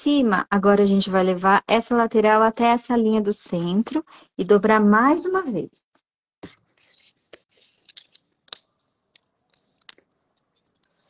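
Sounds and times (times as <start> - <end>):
paper crackling: 6.4 - 11.0
paper rustling: 6.4 - 11.0.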